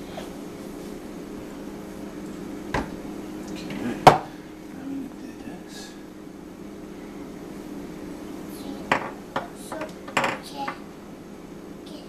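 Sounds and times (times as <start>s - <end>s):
steady low hum: 0.0s - 12.0s.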